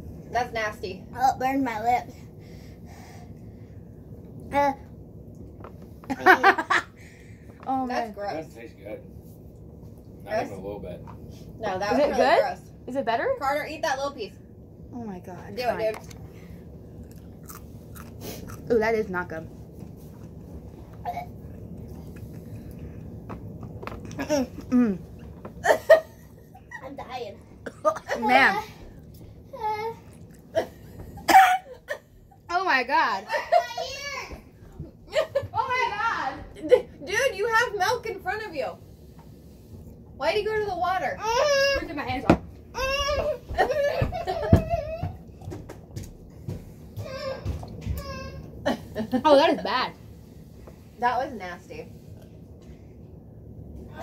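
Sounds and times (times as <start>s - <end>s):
laughter: 6.1s - 6.9s, 25.6s - 26.8s, 43.6s - 44.9s
person sipping and chewing: 17.0s - 18.7s.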